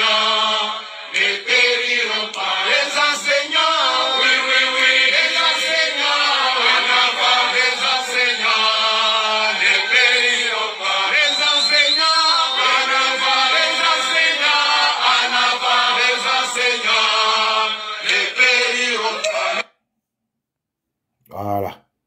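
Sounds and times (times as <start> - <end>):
crowd singing a chant: 0.0 - 19.6.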